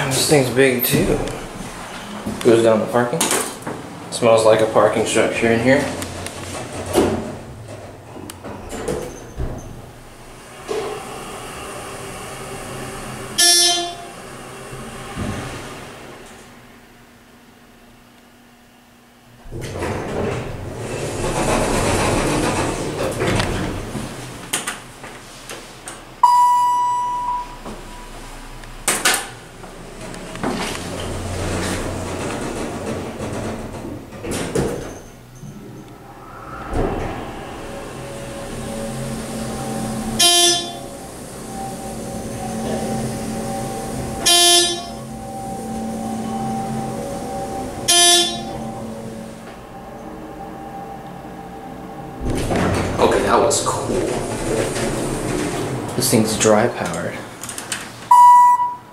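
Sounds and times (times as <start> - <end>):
elevator door sliding shut: 0.0 - 16.6, 19.4 - 25.0, 26.0 - 58.9
short electronic tones: 26.2 - 28.0, 43.6 - 48.8, 58.1 - 58.9
short electronic chime: 26.2 - 28.1, 41.5 - 49.0, 58.1 - 58.9
clunks: 52.2 - 56.1.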